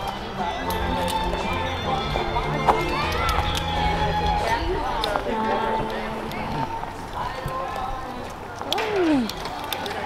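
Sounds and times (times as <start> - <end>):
voices in background: 0.0 - 10.0.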